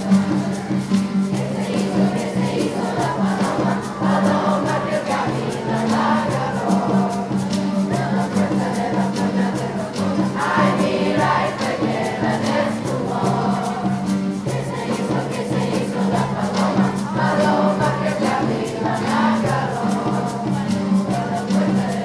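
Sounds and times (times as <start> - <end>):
acoustic guitar: 0.0 - 22.0
choir singing: 0.0 - 22.0
hand percussion beat: 0.0 - 22.0.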